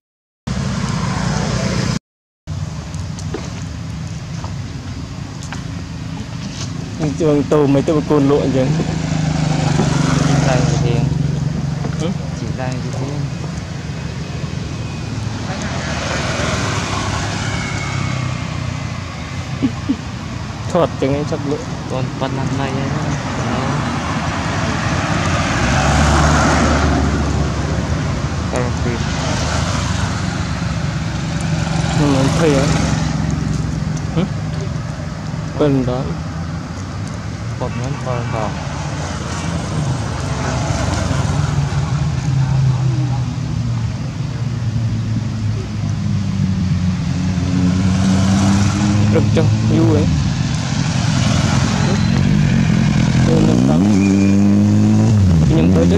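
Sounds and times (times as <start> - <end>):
vehicle passing: 0.5 - 2.0, 6.0 - 55.9.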